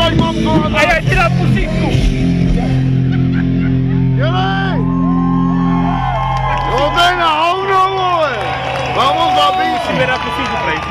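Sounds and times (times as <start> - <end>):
rock band sustained chord: 0.0 - 10.0
crowd member whooping: 2.5 - 10.2.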